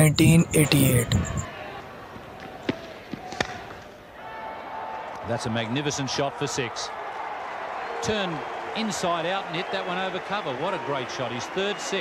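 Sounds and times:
crowd noise: 0:00.0 - 0:07.5.

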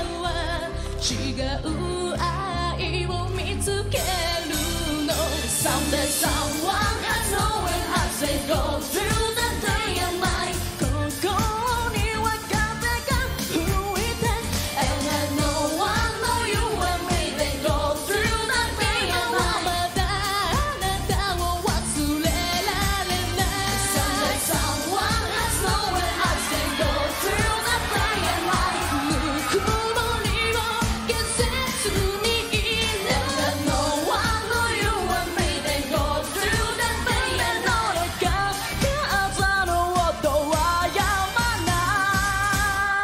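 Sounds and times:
pop backing music: 0:00.0 - 0:43.0
women singing into microphones: 0:00.0 - 0:43.0.

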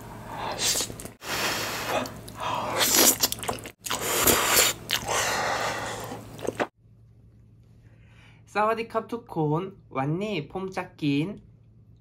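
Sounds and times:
close chewing and biting: 0:02.0 - 0:05.4.

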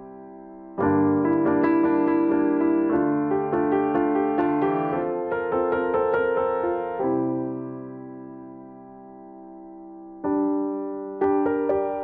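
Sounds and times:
held piano chord: 0:00.0 - 0:12.0.

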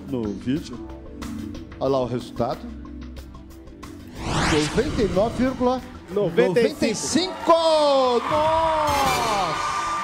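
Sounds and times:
rising whoosh: 0:04.0 - 0:06.1.

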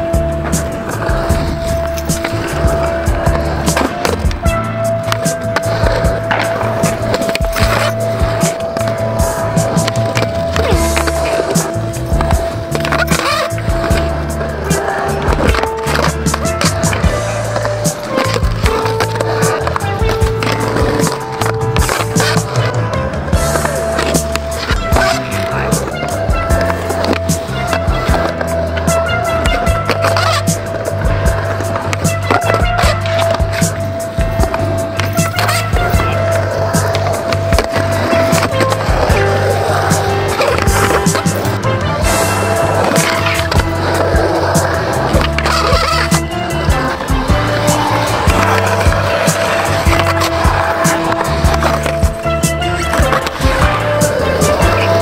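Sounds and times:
music with stepping bass line: 0:00.0 - 0:55.0
skateboard rolling on concrete: 0:00.0 - 0:55.0.

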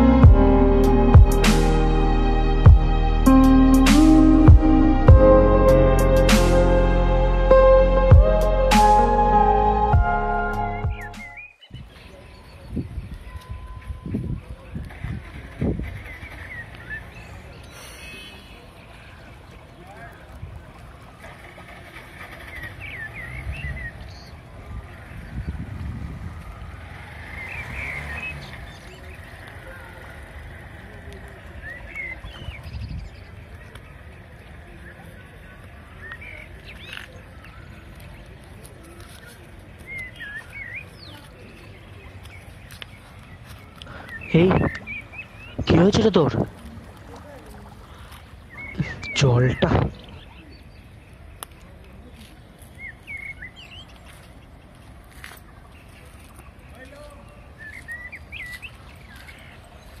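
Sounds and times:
steady low rumble: 0:00.0 - 0:11.4
birds chirping: 0:00.0 - 1:00.0
short high chirps: 0:07.5 - 0:11.5.

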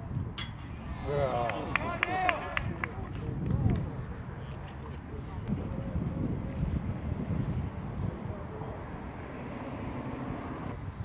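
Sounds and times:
wind on microphone: 0:00.0 - 0:01.5, 0:02.4 - 0:11.0.

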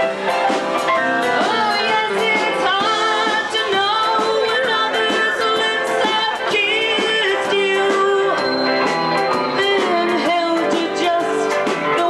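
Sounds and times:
drums and cymbals: 0:00.0 - 0:12.0
live band playing: 0:00.0 - 0:12.0
person singing: 0:00.9 - 0:12.0.

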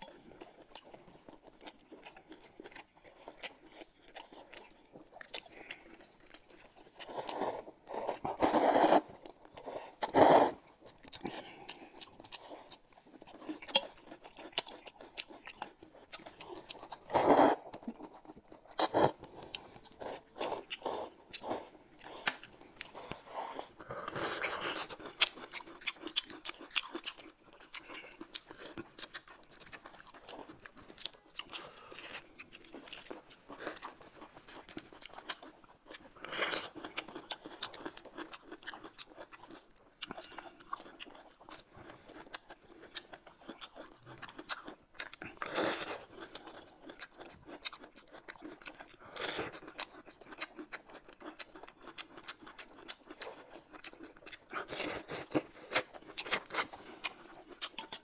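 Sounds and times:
people chewing: 0:00.0 - 0:58.0
slurping noodles and broth: 0:07.0 - 0:12.6, 0:16.9 - 0:17.8, 0:18.8 - 0:25.4.

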